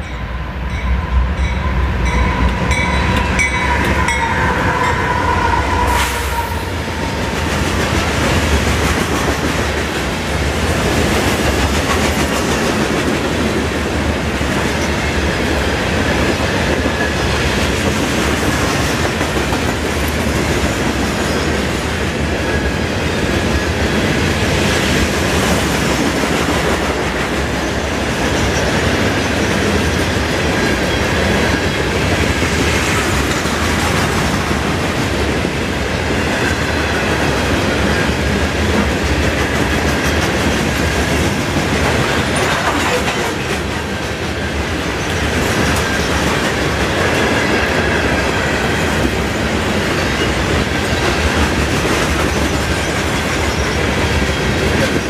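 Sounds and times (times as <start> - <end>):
diesel locomotives rumbling: 0.0 - 55.0
train wheels clacking on rails: 0.0 - 55.0.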